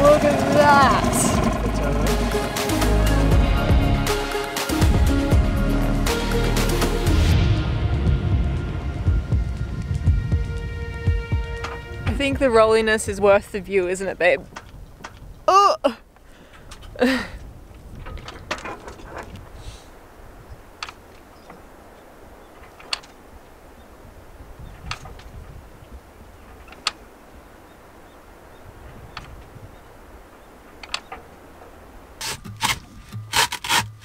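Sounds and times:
hacksaw cutting coconut: 32.2s - 34.0s.

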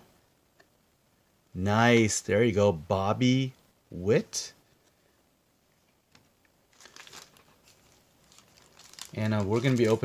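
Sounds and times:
foil wrapper crinkling: 6.7s - 10.0s.

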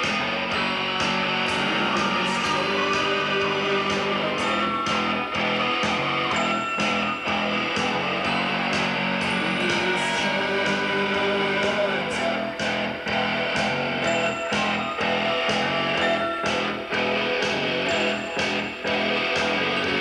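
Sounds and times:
electric guitar: 0.0s - 20.0s
rock band playing live: 0.0s - 20.0s.

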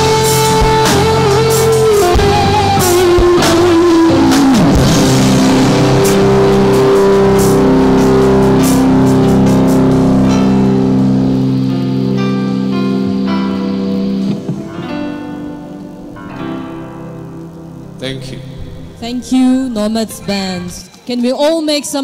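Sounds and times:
drum kit: 0.0s - 17.4s
electric guitar chords: 0.0s - 21.1s
keyboard held notes: 0.0s - 21.4s
cymbal crashes: 3.4s - 12.2s.

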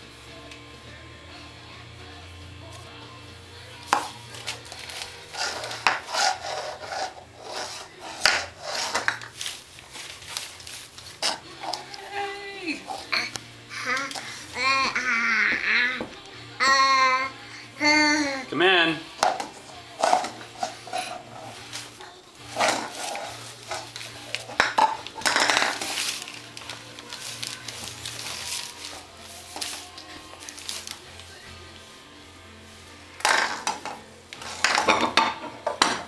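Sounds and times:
plastic cup scraping wooden floor: 3.9s - 12.0s, 19.2s - 31.0s, 33.2s - 36.0s
wrapping paper rustling: 4.3s - 14.6s, 20.4s - 35.0s
baby vocal sound: 11.8s - 18.5s.

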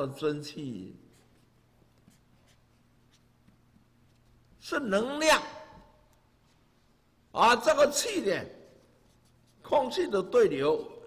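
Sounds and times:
low room hum: 0.0s - 11.0s
pen scratching on paper: 1.1s - 4.4s.

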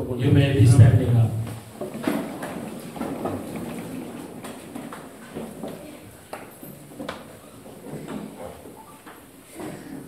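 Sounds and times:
chairs scraping: 0.8s - 10.0s
feet shuffling: 1.4s - 10.0s
small knocks and rustles: 1.4s - 10.0s.

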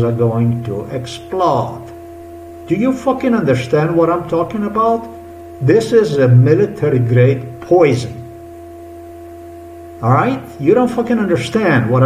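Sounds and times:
low hum: 0.0s - 12.0s
steady high tone: 0.0s - 12.0s.

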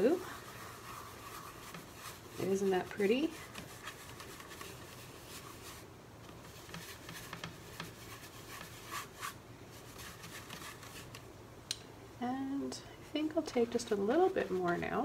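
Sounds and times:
brush scratching across canvas: 0.0s - 11.2s, 13.1s - 15.0s.

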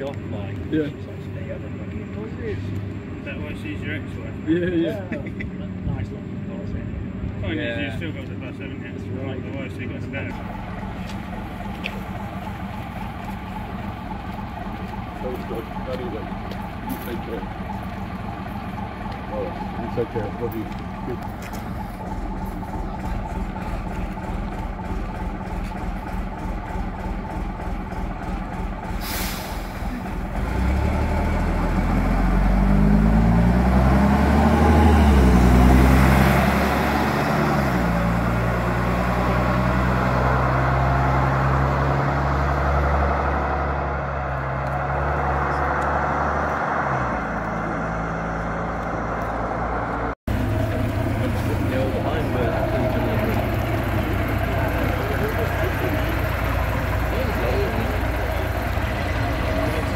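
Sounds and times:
bus diesel engine throbbing: 0.0s - 59.9s
bus pulling away through gears: 10.2s - 59.9s
air hiss: 29.0s - 30.0s.

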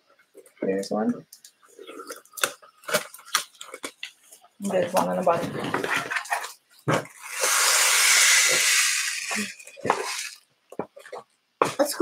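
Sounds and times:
taped cardboard box pulled open: 7.1s - 10.4s.

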